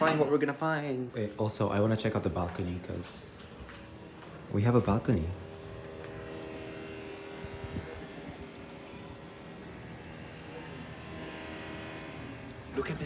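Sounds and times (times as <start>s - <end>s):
faint outdoor noise: 0.0s - 13.0s
mechanical hum: 0.0s - 13.0s.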